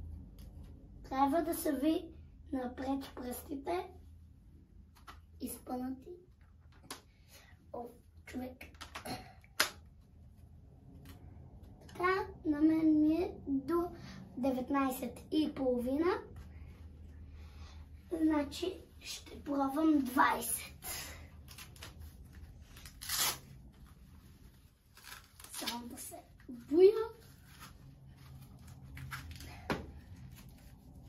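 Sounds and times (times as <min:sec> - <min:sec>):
short tearing rasp: 0:22.9 - 0:23.5.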